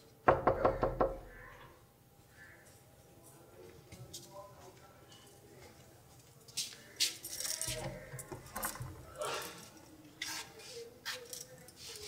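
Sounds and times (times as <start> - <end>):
knocking on a door: 0.3 - 1.3.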